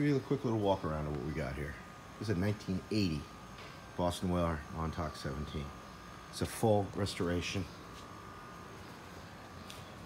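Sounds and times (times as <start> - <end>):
faint high hum: 0.0 - 10.0
low hiss: 0.0 - 10.0.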